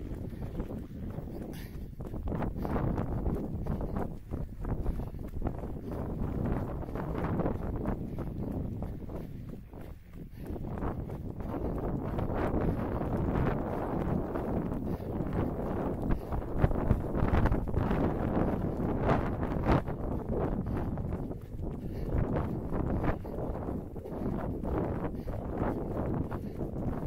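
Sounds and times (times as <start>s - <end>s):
footfalls on tarmac: 0.0s - 27.0s
wind buffeting microphone: 0.0s - 27.0s.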